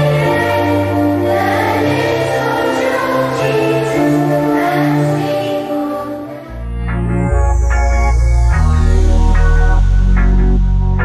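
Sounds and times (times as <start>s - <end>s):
children's choir singing: 0.0s - 6.8s
low sustained accompaniment: 0.0s - 11.0s.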